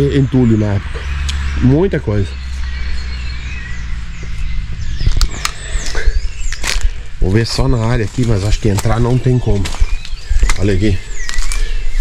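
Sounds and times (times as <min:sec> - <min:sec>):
wind buffeting microphone: 0:00.0 - 0:12.0
footsteps over dry twigs: 0:02.2 - 0:12.0
twigs snapping: 0:05.1 - 0:07.2, 0:08.0 - 0:11.8.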